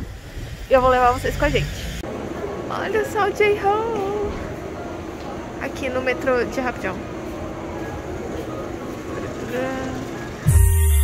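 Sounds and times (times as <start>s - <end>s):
low rumble and hum of concourse: 0.0s - 11.0s
background music with deep bass: 10.4s - 11.0s.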